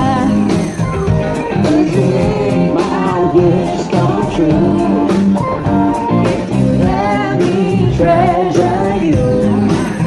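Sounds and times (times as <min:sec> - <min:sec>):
electric guitar: 0:00.0 - 0:10.0
live band playing: 0:00.0 - 0:10.0
person singing: 0:01.5 - 0:05.4, 0:06.2 - 0:10.0.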